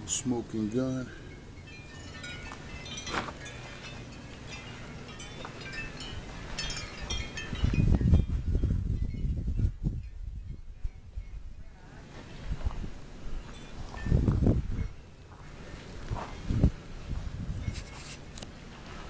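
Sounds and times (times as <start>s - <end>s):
wind chimes tinkling: 0.0s - 11.6s, 13.3s - 15.4s
wind rumbling on microphone: 1.5s - 18.4s.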